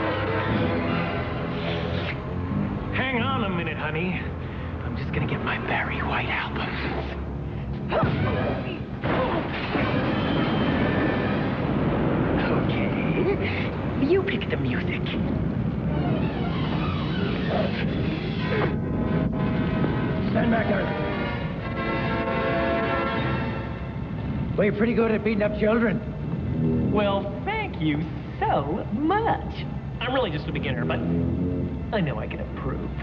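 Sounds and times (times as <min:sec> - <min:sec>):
dramatic orchestral music: 0:00.0 - 0:02.9, 0:15.8 - 0:25.5
fire rumbling: 0:00.0 - 0:33.0
wordless voices: 0:02.9 - 0:09.6, 0:17.1 - 0:18.8
sustained musical tones: 0:15.2 - 0:28.4, 0:29.8 - 0:33.0.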